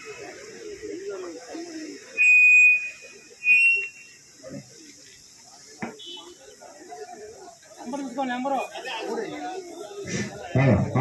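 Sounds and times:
murmur of men's voices: 0.0s - 11.0s
shrill steady tones: 2.0s - 4.4s.

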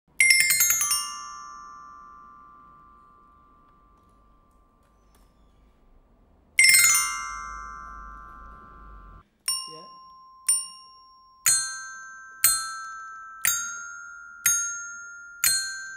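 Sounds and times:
glockenspiel notes struck: 0.2s - 5.1s, 6.6s - 15.9s.

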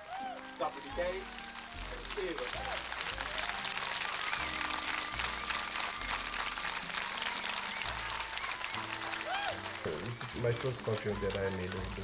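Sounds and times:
crowd applauding: 0.0s - 12.0s.

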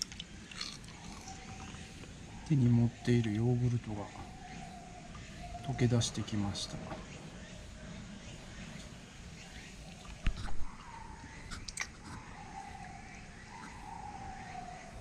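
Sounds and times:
orangutan licking with wet smacks: 11.5s - 12.2s.

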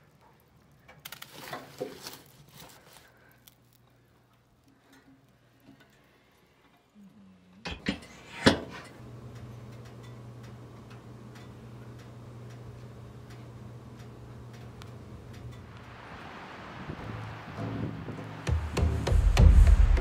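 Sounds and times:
wood crackling in a stove: 0.0s - 18.8s
steady low hum: 3.9s - 20.0s.

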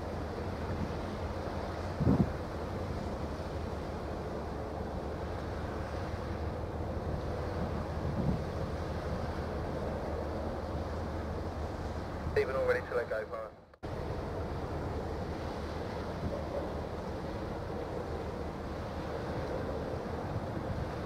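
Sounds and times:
wind blowing on microphone: 0.0s - 12.4s, 14.8s - 21.0s.

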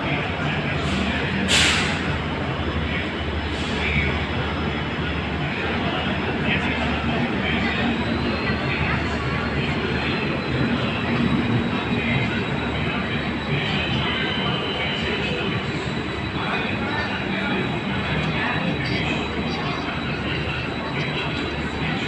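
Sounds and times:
train wheels rumbling on rails: 0.0s - 22.0s.

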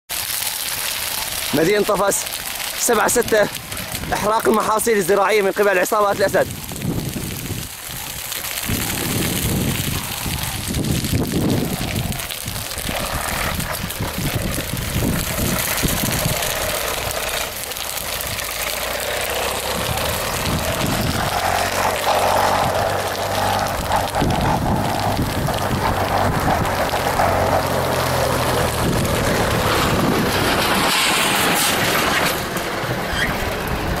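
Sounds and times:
wind noise on microphone: 2.4s - 5.0s, 6.1s - 34.0s.

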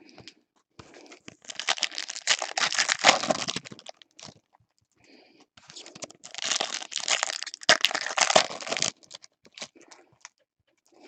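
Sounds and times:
foil wrappers crinkling: 1.3s - 4.4s, 5.8s - 10.3s.

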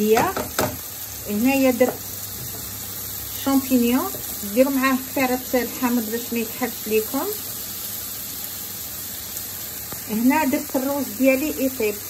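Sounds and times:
mushrooms sizzling in oil: 0.0s - 12.0s.

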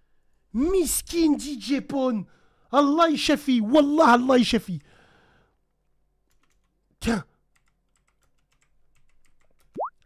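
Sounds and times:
keyboard keys clicking: 6.3s - 6.8s, 7.5s - 9.8s.

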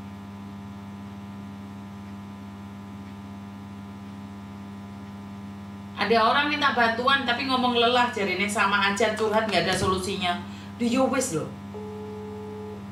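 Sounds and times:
electrical mains hum: 0.0s - 12.9s.

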